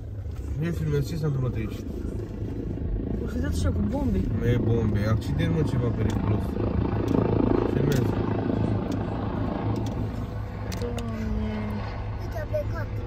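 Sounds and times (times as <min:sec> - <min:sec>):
helicopter rotor: 0:00.0 - 0:13.0.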